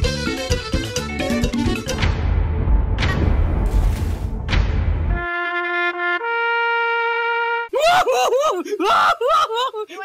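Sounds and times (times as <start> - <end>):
splash-like crash: 3.0 - 5.1
cartoon voice laughing: 7.8 - 10.0.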